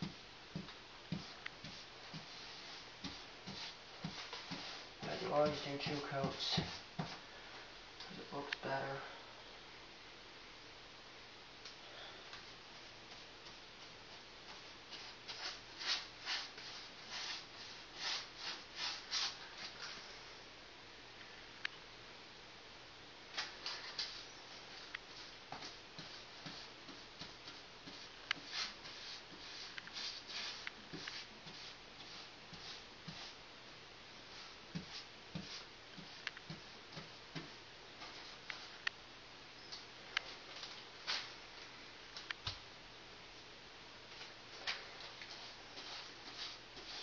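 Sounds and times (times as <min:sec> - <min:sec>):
paintbrush swishes: 0:00.0 - 0:07.2, 0:14.5 - 0:20.0, 0:23.4 - 0:33.4, 0:45.3 - 0:47.0.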